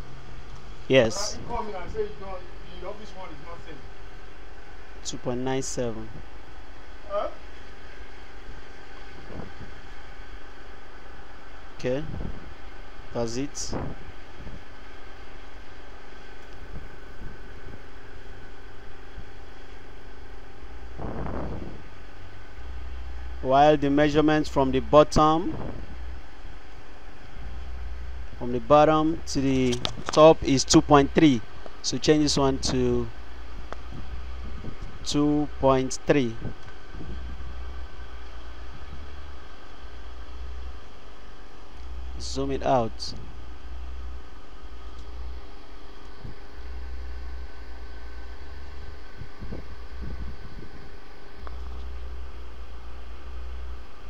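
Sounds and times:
machine hum with low rumble: 0:00.0 - 0:54.0.

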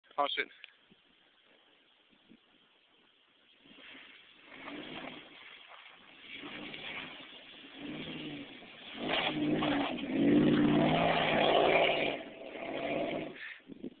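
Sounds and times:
car engine revving: 0:03.7 - 0:13.4.

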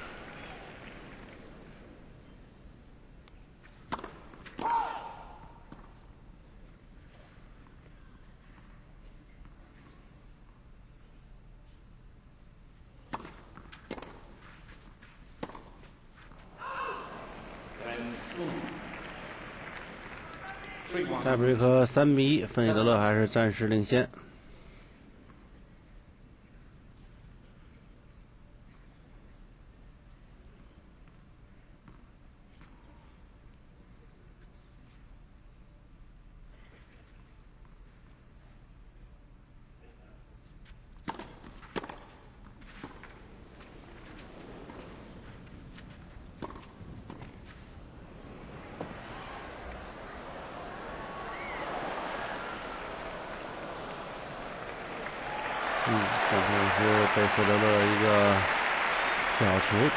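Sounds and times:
rackets hitting tennis ball: 0:03.6 - 0:06.0, 0:13.0 - 0:16.6, 0:41.0 - 0:55.2
tennis ball bouncing: 0:03.7 - 0:04.8, 0:13.0 - 0:16.4, 0:41.0 - 0:51.8.

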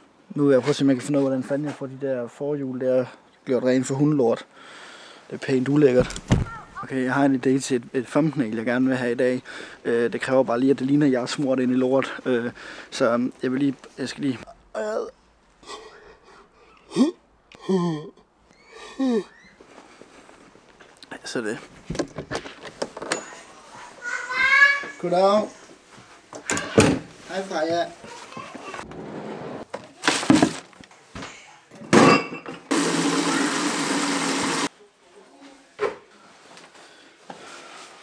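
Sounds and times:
man breathing: 0:04.5 - 0:05.3, 0:09.4 - 0:09.8, 0:12.5 - 0:13.0, 0:15.6 - 0:17.9, 0:18.6 - 0:20.4
tap water running into bucket: 0:32.7 - 0:34.7.

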